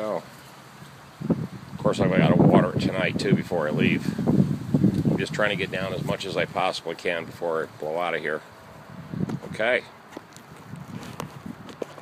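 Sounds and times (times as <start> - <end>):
footsteps: 10.1 - 12.0.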